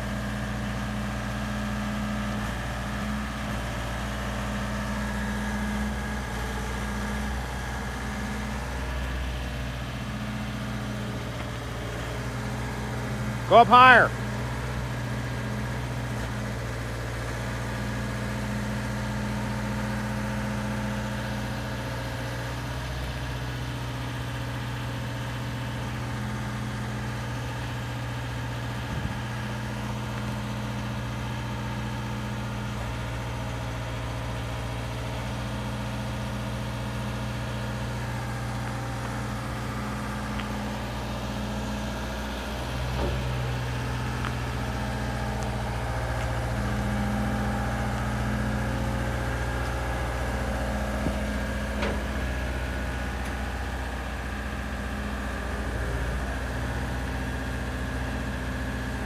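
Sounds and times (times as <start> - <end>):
boom lift engine humming: 0.0 - 59.0.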